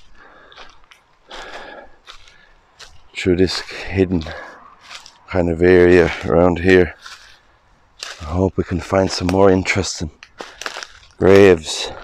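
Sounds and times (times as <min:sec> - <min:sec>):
footsteps on dry leaves: 0:00.0 - 0:12.0.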